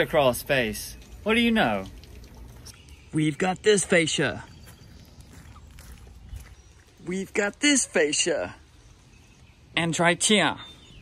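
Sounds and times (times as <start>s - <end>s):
footsteps on grass: 3.8s - 7.5s.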